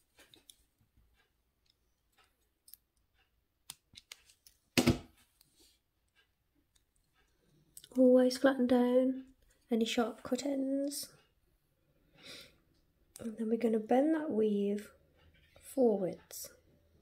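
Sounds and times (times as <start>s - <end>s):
clicks of wire being handled: 1.6s - 4.6s.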